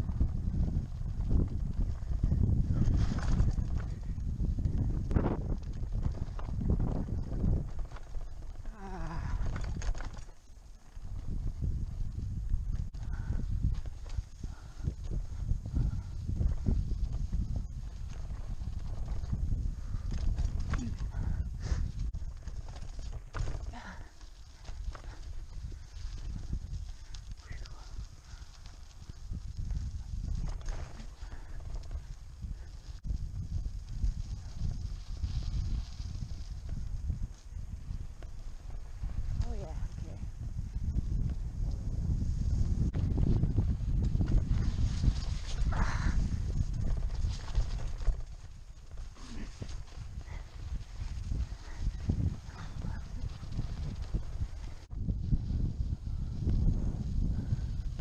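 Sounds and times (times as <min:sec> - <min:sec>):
bike rumbling over rocky road: 0:00.0 - 0:15.3, 0:16.2 - 0:57.0
bike tires and frame clattering: 0:00.1 - 0:39.4.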